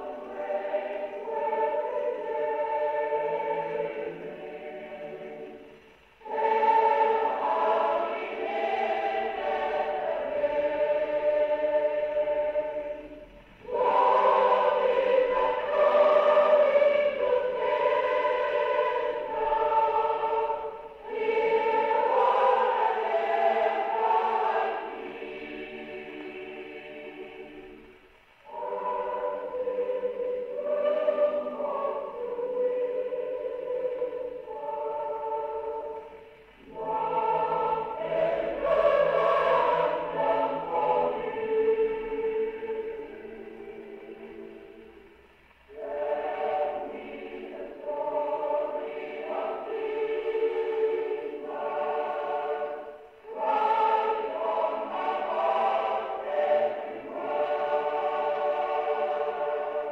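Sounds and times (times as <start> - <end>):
choir singing a hymn on old record: 0.0 - 59.9.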